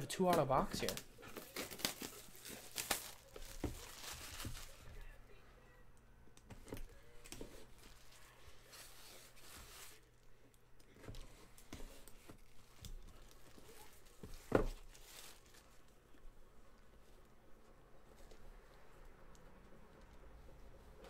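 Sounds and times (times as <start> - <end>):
plastic wrapping tearing: 0.8 - 5.0, 11.5 - 15.9.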